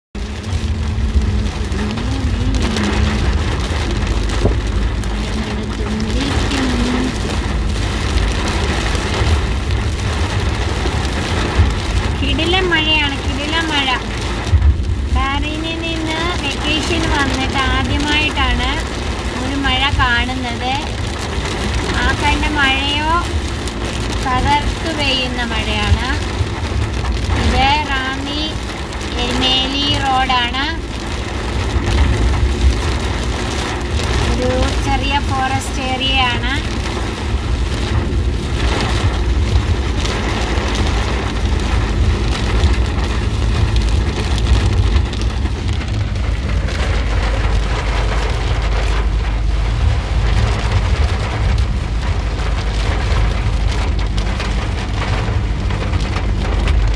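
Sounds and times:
car engine and tyres rumbling: 0:00.0 - 0:56.9
heavy rain on car roof: 0:00.0 - 0:56.9
person talking: 0:01.7 - 0:03.3, 0:05.4 - 0:07.4, 0:15.2 - 0:18.8, 0:34.3 - 0:36.7.

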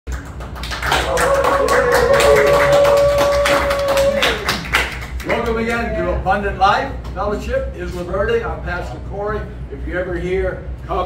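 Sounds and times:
hand clapping: 0:00.1 - 0:05.8.

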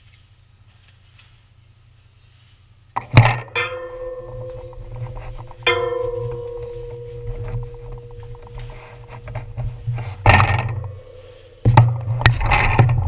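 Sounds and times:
metal strikes ringing: 0:03.0 - 0:13.0.

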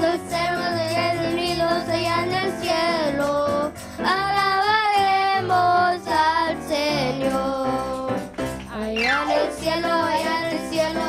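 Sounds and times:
girls singing into microphones: 0:00.0 - 0:08.2, 0:08.8 - 0:11.0
electronic keyboard accompaniment: 0:00.0 - 0:11.0.

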